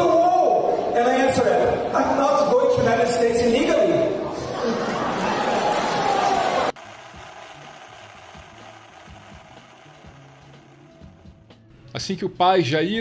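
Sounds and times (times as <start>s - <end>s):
audience laughing and applauding: 4.4s - 8.4s.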